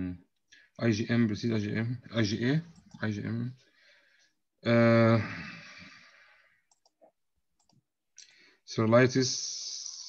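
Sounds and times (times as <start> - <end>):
faint clicks: 6.7 - 8.4.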